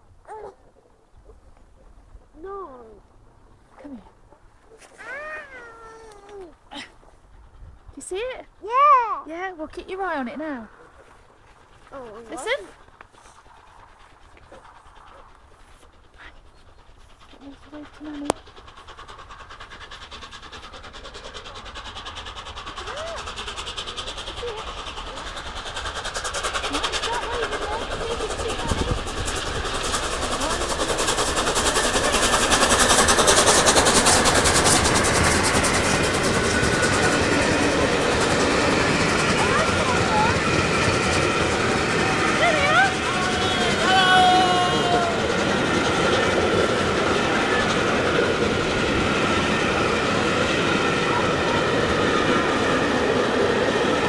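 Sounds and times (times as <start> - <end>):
steam locomotive passing: 0.0 - 54.0
train wheels clattering on rails: 9.3 - 54.0.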